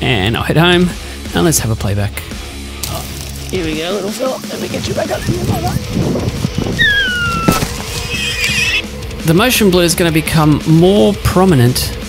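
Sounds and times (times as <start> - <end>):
background music: 0.0 - 12.0
high animal call sliding down: 6.8 - 8.8
whinny-like call: 6.8 - 8.9.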